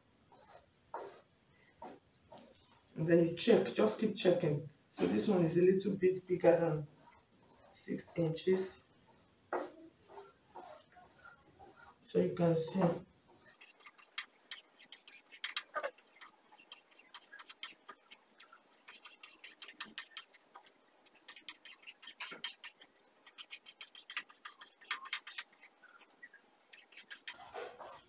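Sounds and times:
chalk scratching on fabric: 0.3s - 2.8s, 5.0s - 28.0s.

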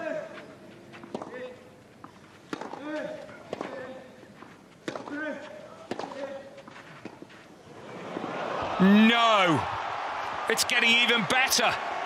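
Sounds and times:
racket striking tennis ball: 1.0s - 1.4s, 2.5s - 3.9s, 4.8s - 6.3s.

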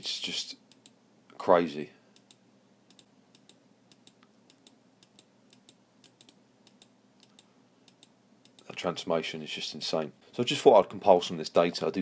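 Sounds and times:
computer keys clicking: 2.2s - 8.7s.

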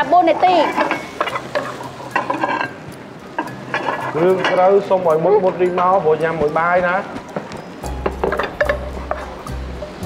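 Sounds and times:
food sizzling: 0.0s - 10.0s
spatula scraping frying pan: 0.2s - 5.9s.

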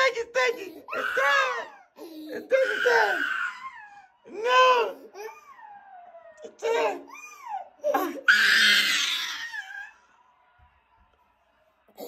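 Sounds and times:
toddler crying: 0.9s - 4.1s, 5.1s - 9.9s.

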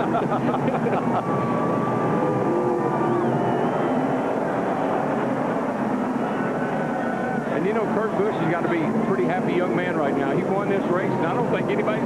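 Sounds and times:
constant background noise: 0.0s - 12.0s
race car engines running: 0.0s - 12.0s.

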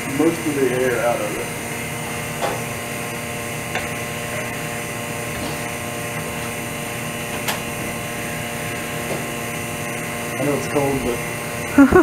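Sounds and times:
vacuum pump humming: 0.0s - 12.0s.

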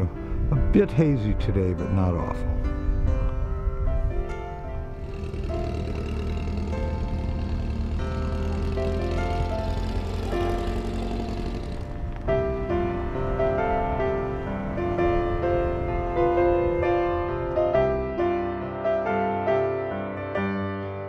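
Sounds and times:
background music with held notes: 0.0s - 21.0s
dune buggy engine running: 3.4s - 18.0s.

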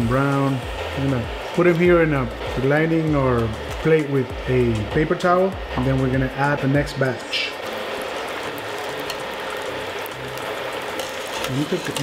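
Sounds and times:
plantain slices sizzling in hot oil: 0.0s - 12.0s.

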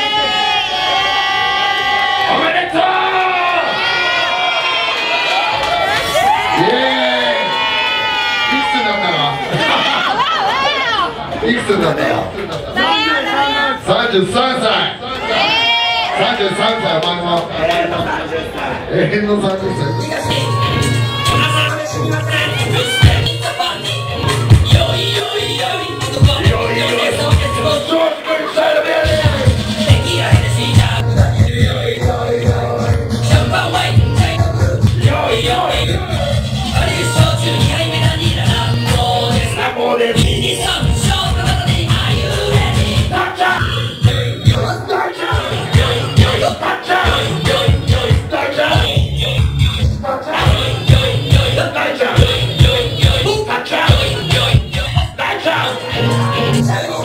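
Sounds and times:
club music with pulsing bass: 19.9s - 57.0s.

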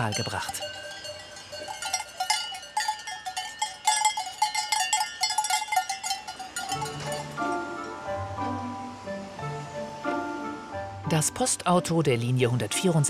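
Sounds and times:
cowbells clanging: 0.0s - 8.0s
background music: 6.6s - 13.0s.

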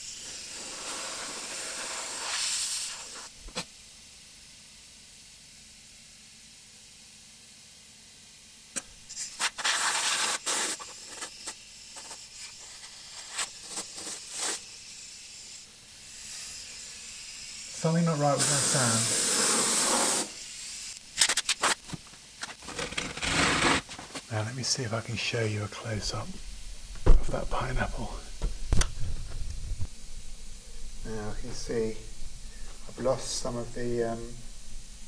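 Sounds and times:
compressed air blow gun hissing: 0.0s - 3.4s, 9.0s - 21.8s, 25.8s - 35.0s
short air blasts: 0.0s - 3.4s, 9.1s - 14.7s, 16.0s - 20.9s.

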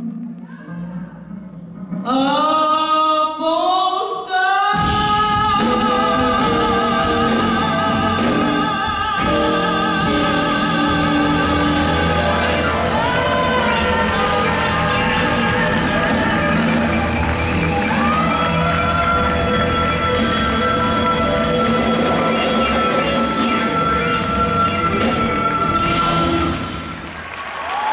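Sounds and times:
full band accompaniment: 0.0s - 27.9s.

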